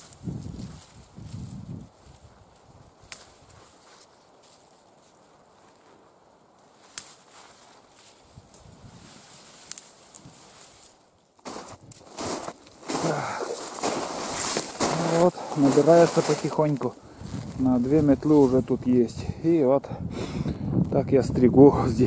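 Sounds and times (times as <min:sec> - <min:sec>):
twig bundle rustling: 0:00.0 - 0:19.0
twigs snapping: 0:02.0 - 0:18.4.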